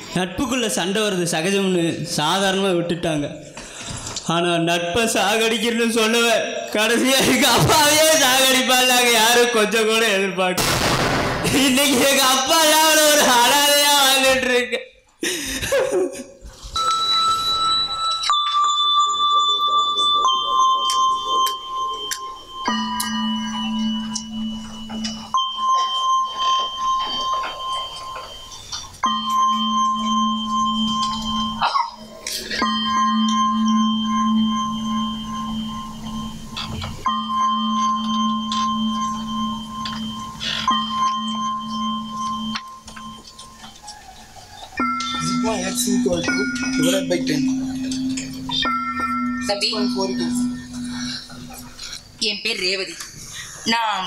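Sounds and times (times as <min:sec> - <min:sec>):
slow instrumental music: 0:15.8 - 0:52.2
low steady drone: 0:45.1 - 0:52.2.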